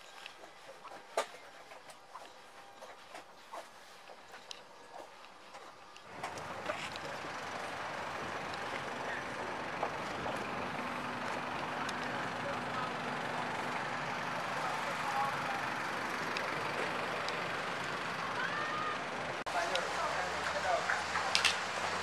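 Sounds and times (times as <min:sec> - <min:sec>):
aircraft and vehicle engines: 0:06.0 - 0:22.0
faint voices: 0:06.1 - 0:21.5.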